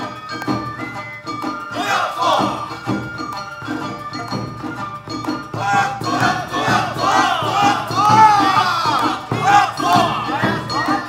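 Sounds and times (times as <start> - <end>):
group shouting chant calls: 1.7 - 2.8, 5.5 - 11.0
steady drum beat: 1.7 - 11.0.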